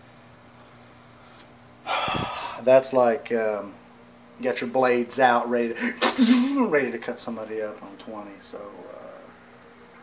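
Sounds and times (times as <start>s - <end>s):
faint steady hum: 0.0s - 10.0s
man breathing in: 1.8s - 2.6s
man speaking: 4.4s - 9.3s.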